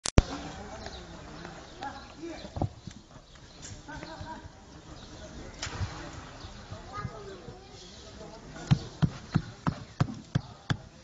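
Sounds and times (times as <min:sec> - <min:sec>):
voices talking: 0:00.2 - 0:11.0.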